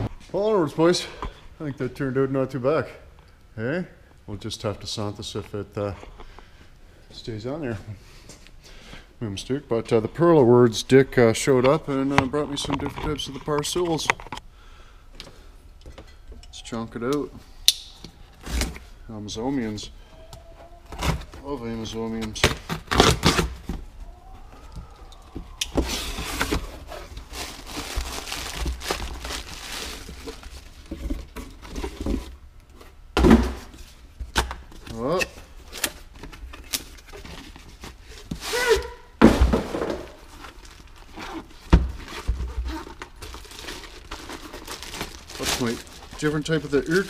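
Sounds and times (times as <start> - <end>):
packaging and plastic bag rustling: 19.6 - 33.0, 33.6 - 47.0.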